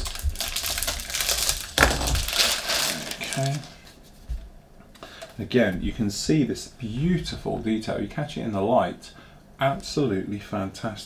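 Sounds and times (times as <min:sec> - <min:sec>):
plastic bag crinkling: 0:00.0 - 0:03.9
sharp knock: 0:01.8 - 0:02.2.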